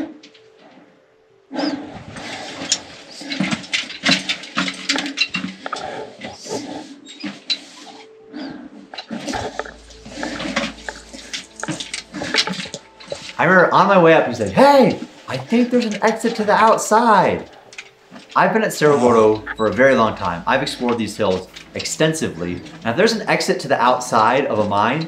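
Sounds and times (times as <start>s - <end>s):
vocal sounds: 9.2s - 17.5s, 18.4s - 25.0s.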